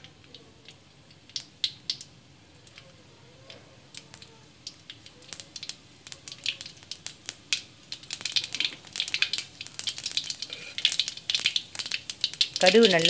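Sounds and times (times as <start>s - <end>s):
seeds popping in hot oil: 0.0s - 13.0s.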